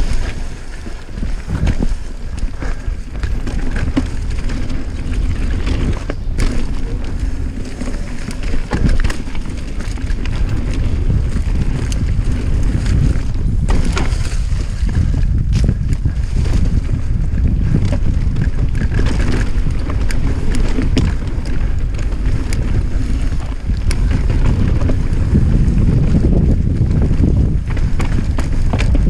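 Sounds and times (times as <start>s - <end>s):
bike clicks and knocks: 0.0s - 29.0s
mountain bike rolling on dirt: 0.0s - 29.0s
wind buffeting microphone: 0.0s - 29.0s.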